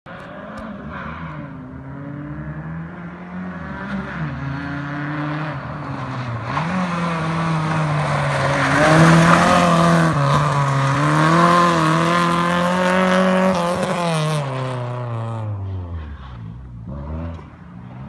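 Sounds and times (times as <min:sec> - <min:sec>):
rally car engine revving hard: 0:00.1 - 0:18.0.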